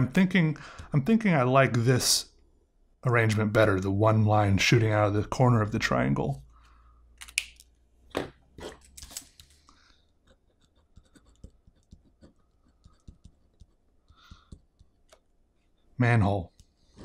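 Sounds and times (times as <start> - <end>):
pen scratching on paper: 10.2 - 15.2.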